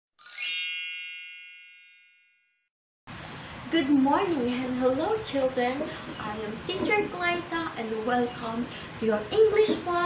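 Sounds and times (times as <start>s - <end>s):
bright chime: 0.2s - 2.6s.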